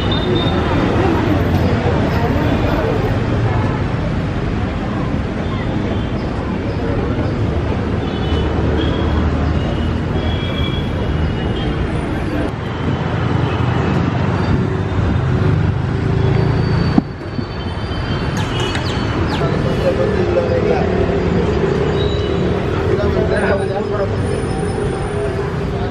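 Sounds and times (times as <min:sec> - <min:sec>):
people's voices: 0:00.0 - 0:12.7, 0:18.3 - 0:25.9
vehicle engines passing: 0:00.0 - 0:25.9.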